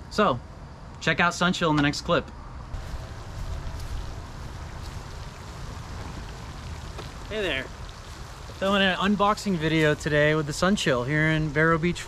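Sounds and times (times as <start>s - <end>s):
wind buffeting microphone: 2.6s - 12.0s.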